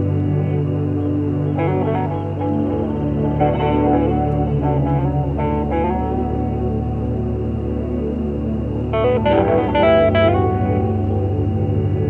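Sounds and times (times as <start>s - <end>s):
plucked guitar notes: 0.0s - 7.5s, 8.9s - 12.0s
sustained low backdrop: 0.0s - 12.0s.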